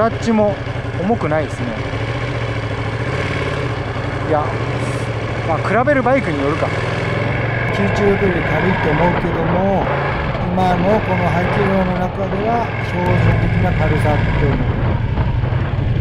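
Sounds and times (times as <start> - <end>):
rider talking: 0.0 - 1.9, 4.2 - 6.8, 7.7 - 14.7
motorcycle engine humming: 0.0 - 16.0.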